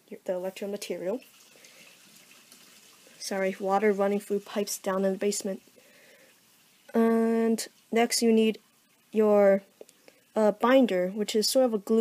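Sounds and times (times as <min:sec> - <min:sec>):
water running through pipes: 0:00.0 - 0:12.0.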